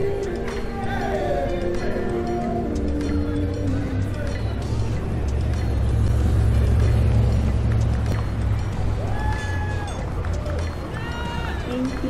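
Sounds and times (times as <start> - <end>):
traffic rumble: 0.0 - 12.0
voices of passers-by: 0.0 - 12.0.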